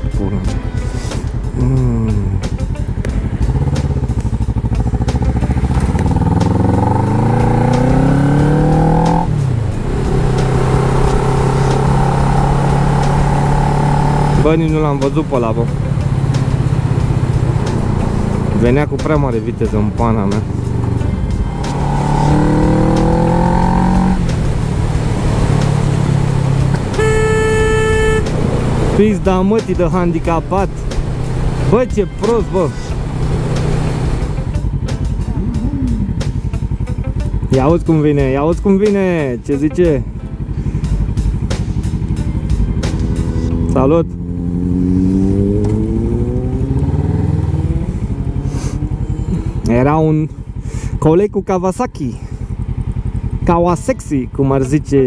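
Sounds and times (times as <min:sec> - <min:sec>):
motorcycle engine revving: 0:00.0 - 0:55.0
vehicle horn blast: 0:26.9 - 0:28.5.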